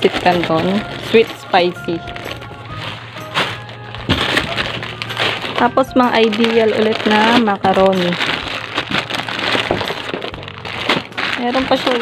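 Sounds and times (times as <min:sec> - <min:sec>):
plastic food packets rustling: 0:00.0 - 0:12.0
soft background music: 0:00.0 - 0:12.0.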